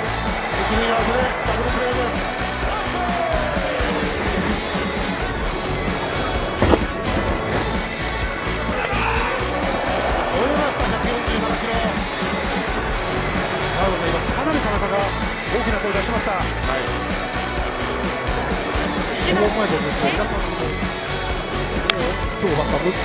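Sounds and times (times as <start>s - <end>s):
fans cheering and chanting: 0.0s - 23.0s
music from the stands: 0.0s - 23.0s.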